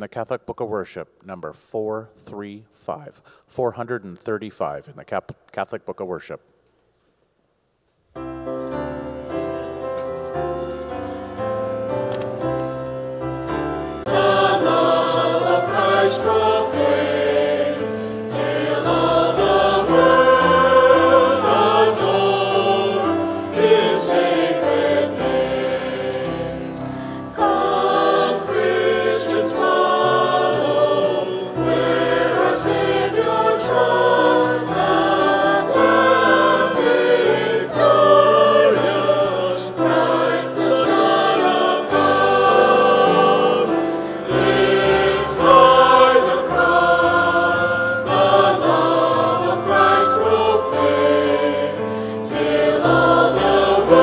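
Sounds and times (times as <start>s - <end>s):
congregation singing a hymn: 8.7s - 54.0s.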